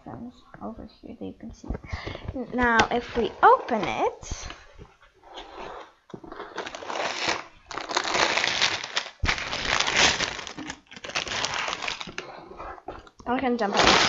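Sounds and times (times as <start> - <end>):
plastic bags crinkling: 6.3 - 12.4, 13.6 - 14.0.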